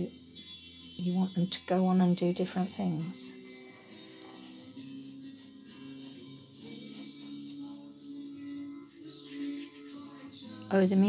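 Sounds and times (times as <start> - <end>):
slow sustained background music: 0.0 - 11.0
paintbrush scrubbing canvas: 3.0 - 11.0.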